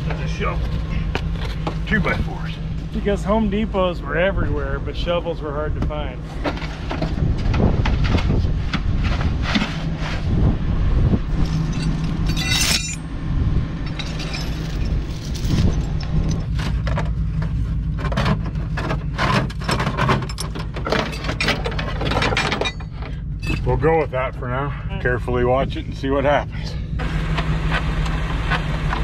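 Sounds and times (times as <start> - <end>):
low rumble: 0.0 - 29.0
chain and tools clinking on metal: 11.4 - 13.1, 13.8 - 16.9, 18.8 - 23.8
ringing metal clang: 11.6 - 13.1, 22.3 - 23.7.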